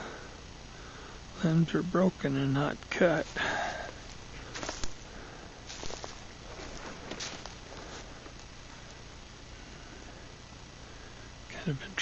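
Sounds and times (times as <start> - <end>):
background hiss: 0.0 - 12.0
footsteps on leaves and twigs: 3.1 - 9.4.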